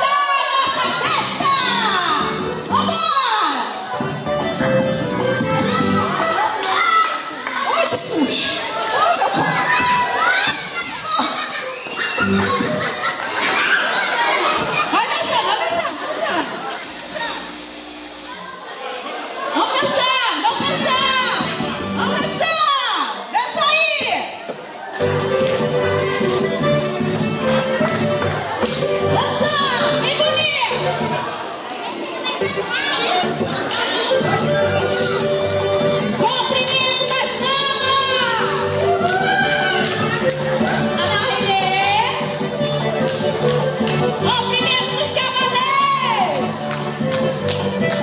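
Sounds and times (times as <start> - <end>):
children shouting and cheering: 0.0 - 16.5, 24.7 - 48.0
dance music: 0.9 - 3.0, 3.9 - 6.5, 25.0 - 31.3, 32.5 - 48.0.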